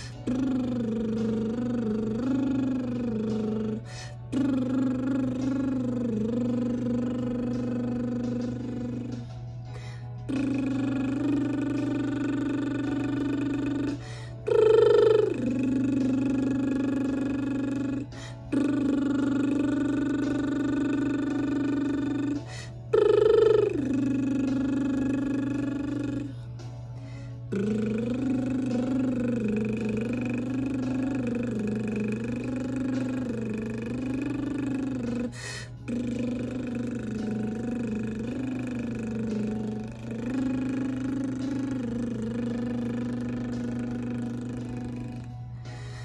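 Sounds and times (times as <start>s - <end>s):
woman humming held notes: 0.0s - 26.6s, 27.4s - 46.0s
breathing: 3.8s - 4.2s, 9.6s - 10.2s, 14.0s - 14.4s, 18.1s - 18.5s, 27.0s - 27.5s, 35.4s - 35.8s, 45.6s - 46.0s.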